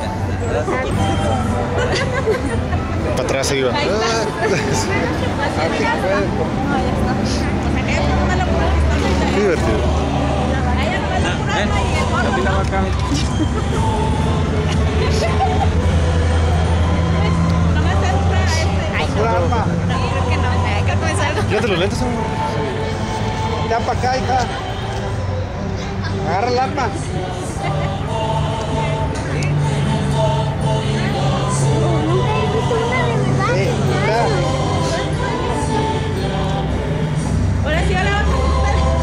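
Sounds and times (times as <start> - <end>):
background voices talking: 0.0 - 39.0.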